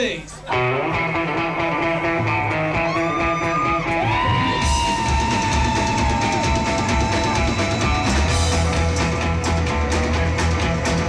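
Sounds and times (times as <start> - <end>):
live rock band playing: 0.5 - 11.0
drum hits: 4.5 - 10.1.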